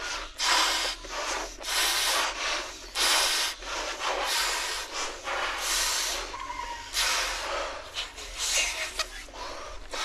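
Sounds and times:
breaths blown into balloons: 0.0s - 8.8s.

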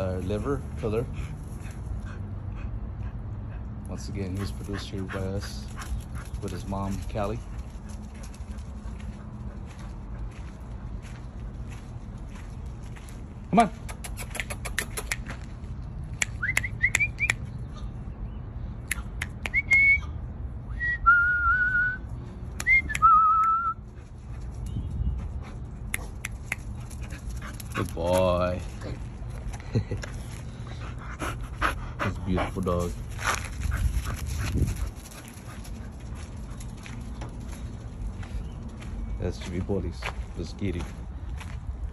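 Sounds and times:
person whistling: 19.4s - 23.8s.

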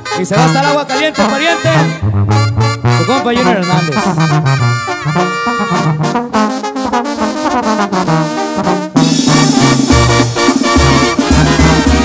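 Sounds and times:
brass section playing melody: 0.0s - 12.0s
stepping bass line: 1.6s - 6.2s, 8.9s - 12.0s.

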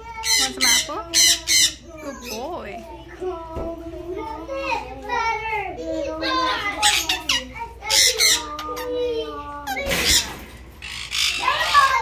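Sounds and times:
parrot speech-like chattering: 0.0s - 2.6s, 6.2s - 12.0s
parrots squawking: 0.0s - 2.7s, 6.2s - 12.0s.

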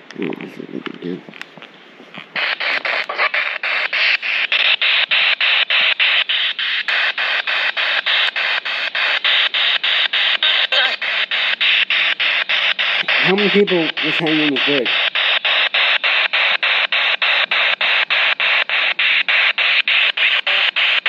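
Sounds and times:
chopped radio static: 0.0s - 21.0s
radio broadcast fragments: 0.0s - 21.0s.

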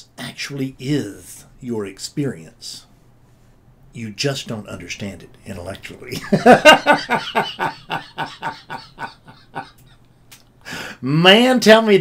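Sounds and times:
man laughing: 6.1s - 10.1s.

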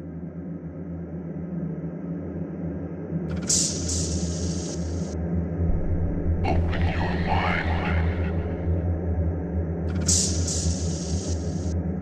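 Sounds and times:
low droning ambient rumble: 4.2s - 12.0s.

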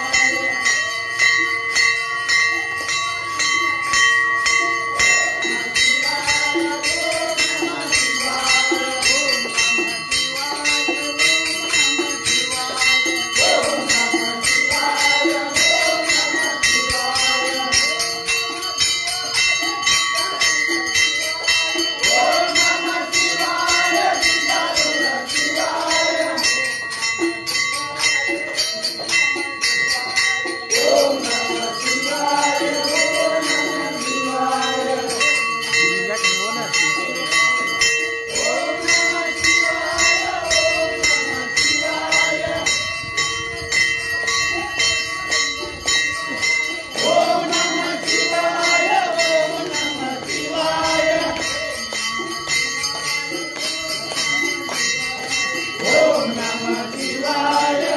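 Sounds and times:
men singing devotional song: 0.0s - 3.8s, 4.4s - 57.9s
bells ringing: 0.0s - 57.9s
hand cymbals jingling: 0.0s - 57.9s.

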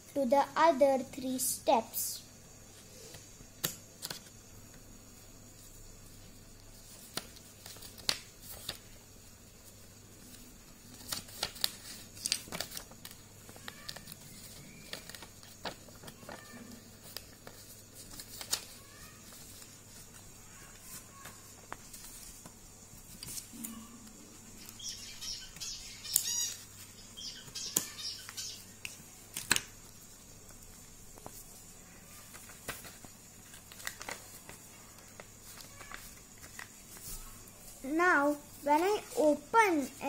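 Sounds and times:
paper rustling: 6.7s - 9.0s, 9.6s - 23.8s, 27.5s - 40.0s.

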